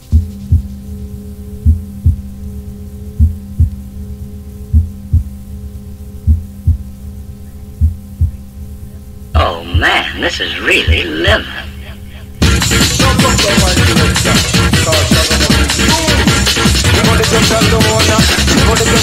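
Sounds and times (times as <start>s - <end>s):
low synth drone: 0.0s - 15.8s
rave track with vocal: 9.4s - 19.0s.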